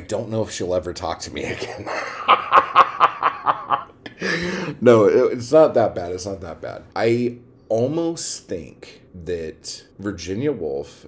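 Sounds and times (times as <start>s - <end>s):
man laughing: 1.4s - 4.8s.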